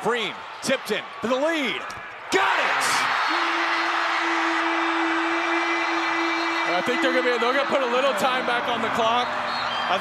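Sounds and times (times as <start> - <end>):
crowd cheering loudly: 0.0 - 10.0.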